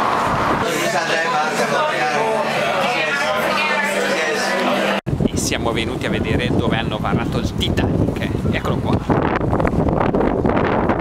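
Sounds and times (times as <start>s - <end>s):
wind rumbling on microphone: 0.0s - 0.9s, 5.1s - 11.0s.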